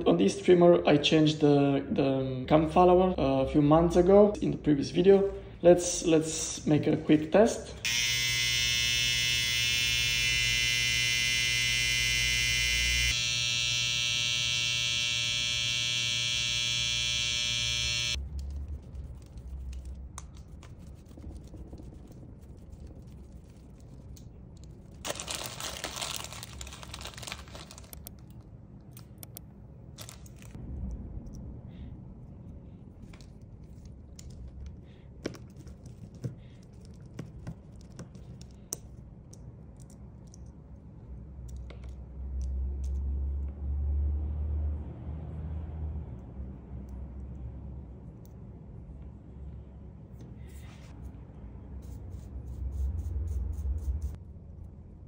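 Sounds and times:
hair trimmer buzzing: 7.8s - 18.2s.

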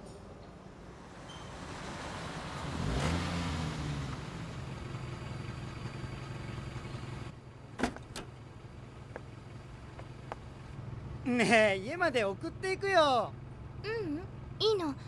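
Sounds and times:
car engine: 0.8s - 15.0s.

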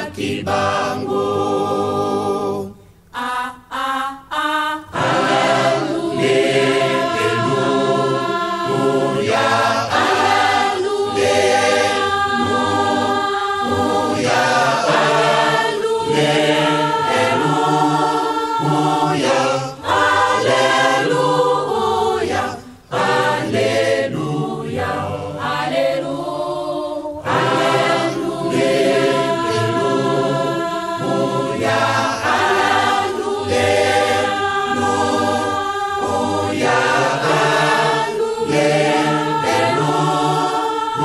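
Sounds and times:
choir singing religious song: 0.0s - 41.0s.

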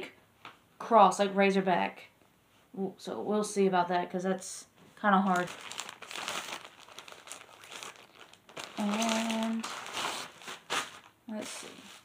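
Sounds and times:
plastic bag crinkling: 5.1s - 12.0s.

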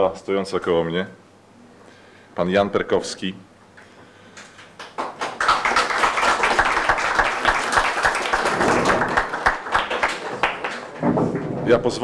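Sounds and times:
people applauding: 4.7s - 11.4s.

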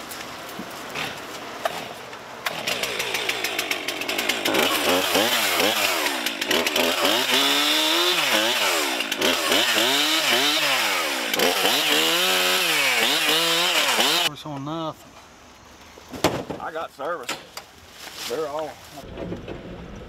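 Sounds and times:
chainsaw revving through wood: 2.4s - 14.3s.

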